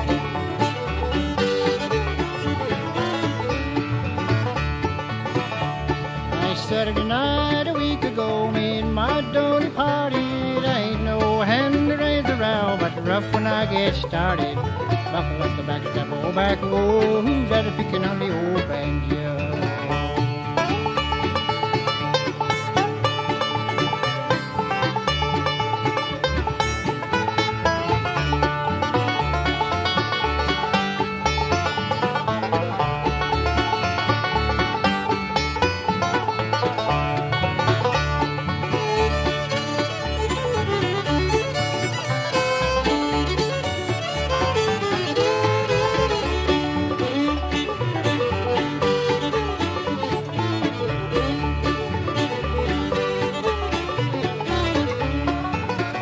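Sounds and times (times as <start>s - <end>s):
banjo: 0.0s - 56.0s
bluegrass band playing: 0.0s - 56.0s
fiddle: 0.0s - 56.0s.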